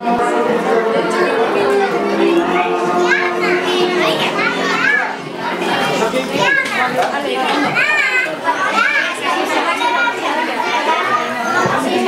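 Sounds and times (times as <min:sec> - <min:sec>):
background music: 0:00.0 - 0:06.6
children chattering: 0:00.0 - 0:12.0.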